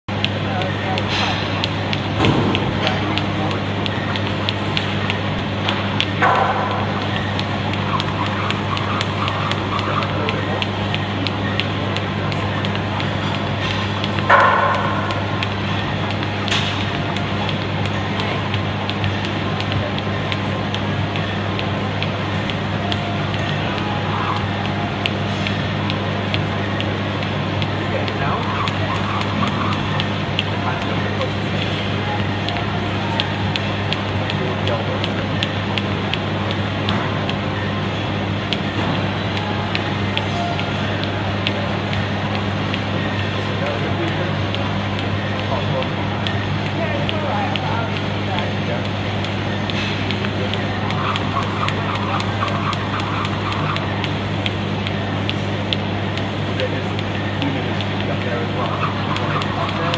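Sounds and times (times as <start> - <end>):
machines and ventilation hum: 0.0 - 59.9
distant voices: 0.1 - 59.9
jump rope striking floor: 0.1 - 59.9.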